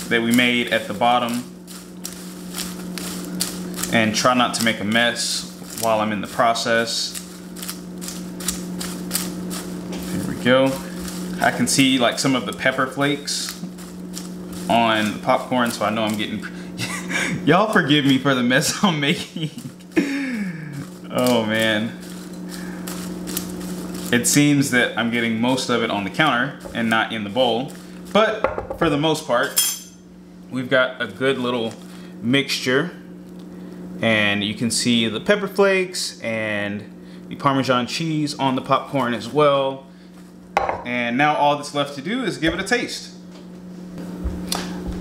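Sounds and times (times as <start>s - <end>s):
spatula stirring popcorn in glass bowl: 0.0s - 16.4s, 17.4s - 20.0s, 20.9s - 28.4s
steady low hum: 0.0s - 45.0s.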